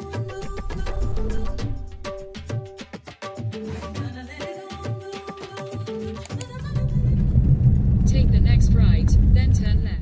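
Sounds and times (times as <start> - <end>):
intro music: 0.0 - 3.0
vehicle engine rumble from inside: 6.6 - 10.0.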